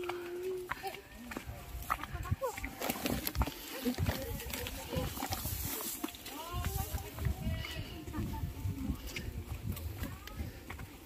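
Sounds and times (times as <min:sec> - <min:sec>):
footsteps on trail: 0:00.0 - 0:11.0.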